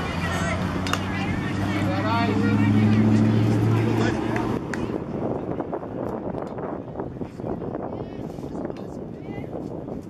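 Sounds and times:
voices calling: 0.0 - 6.1
motor engine humming: 0.0 - 6.9.

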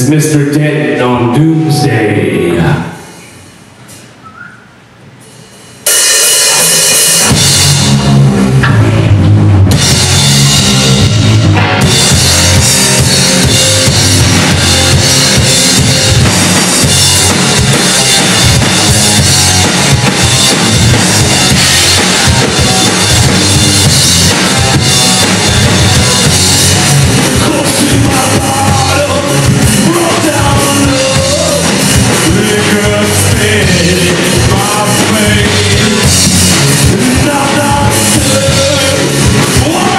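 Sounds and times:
drum kit: 5.2 - 39.9
rock band playing live: 5.8 - 39.9
electric bass: 6.5 - 39.9.

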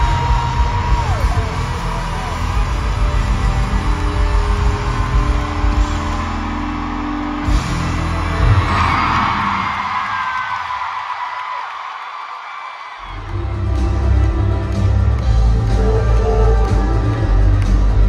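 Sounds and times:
live pop-rock music: 0.0 - 10.2, 13.1 - 18.0.

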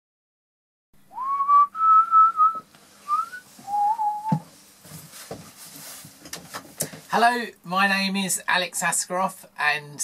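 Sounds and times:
person whistling a tune: 1.1 - 4.4.

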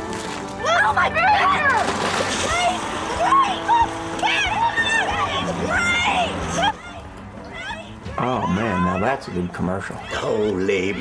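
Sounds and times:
water splashing: 0.0 - 7.0
people calling out: 0.6 - 11.0.

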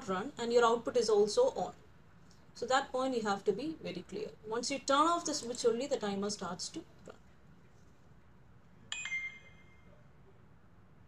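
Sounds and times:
bright ding: 8.9 - 9.9.

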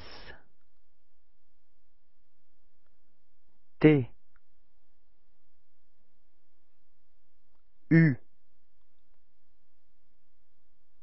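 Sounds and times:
person saying a letter: 3.8 - 4.2.

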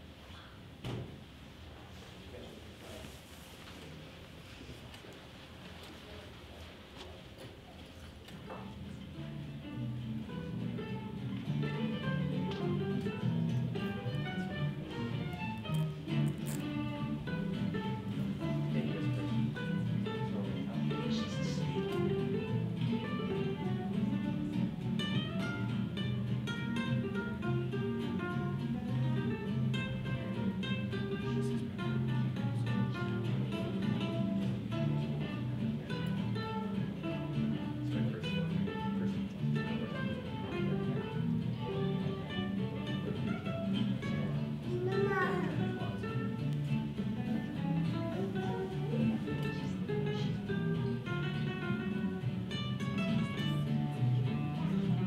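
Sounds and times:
plucked guitar music: 8.4 - 55.0.

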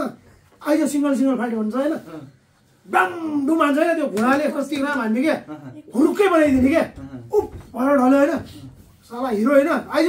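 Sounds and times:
man speaking animatedly: 0.0 - 10.0.

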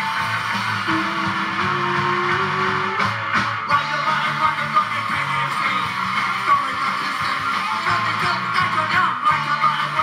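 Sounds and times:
distorted electric guitars: 0.0 - 10.0
drums: 0.0 - 10.0.

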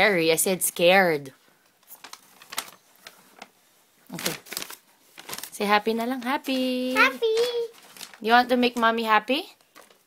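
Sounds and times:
rustling against microphone: 4.2 - 8.3.

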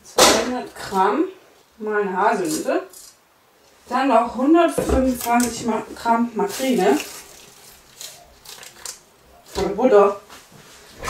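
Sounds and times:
wrapper crinkling: 5.1 - 9.7.

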